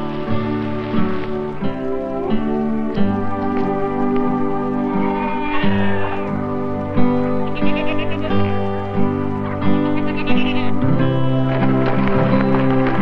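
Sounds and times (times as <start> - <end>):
light background music: 0.0 - 13.0
goats bleating: 4.6 - 11.7.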